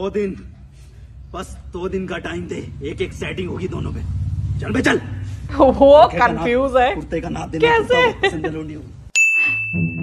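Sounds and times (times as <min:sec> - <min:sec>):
bright ding: 0:09.2 - 0:10.0.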